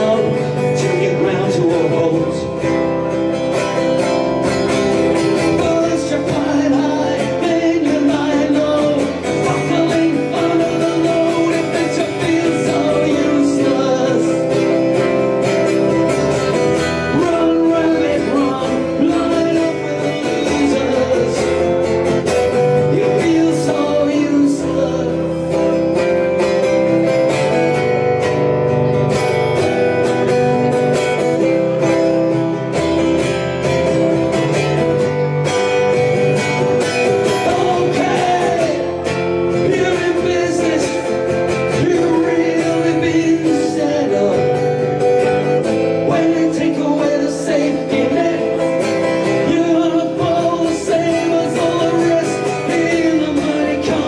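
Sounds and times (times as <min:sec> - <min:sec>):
man singing: 0:00.0 - 0:03.7, 0:04.5 - 0:26.9, 0:36.4 - 0:54.0
acoustic guitar strumming: 0:00.0 - 0:54.0.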